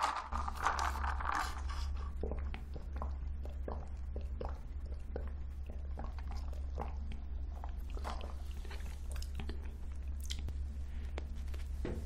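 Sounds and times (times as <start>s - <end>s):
steady low hum: 0.0s - 12.0s
chewing and swallowing: 1.4s - 11.4s.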